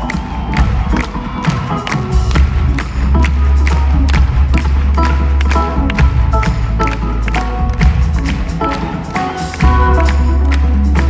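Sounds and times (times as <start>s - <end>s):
crowd cheering: 0.0s - 11.0s
live rock band playing: 0.0s - 11.0s.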